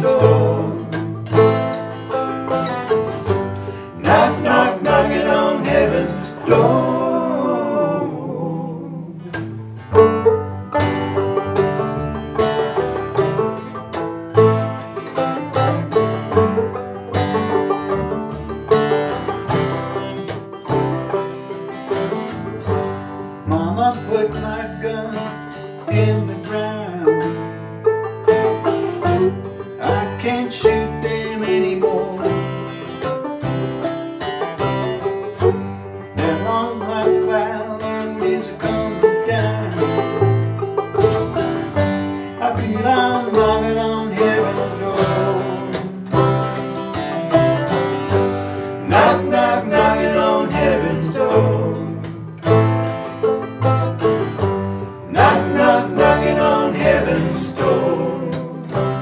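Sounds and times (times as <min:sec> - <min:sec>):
strummed acoustic guitar: 0:00.0 - 0:08.4, 0:09.2 - 0:59.0
banjo picking: 0:00.0 - 0:59.0
plucked upright bass: 0:00.0 - 0:59.0.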